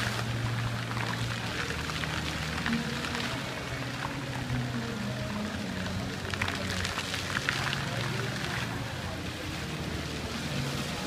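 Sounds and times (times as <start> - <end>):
fountain water splashing: 0.0 - 11.0
music with held low notes: 0.0 - 11.0.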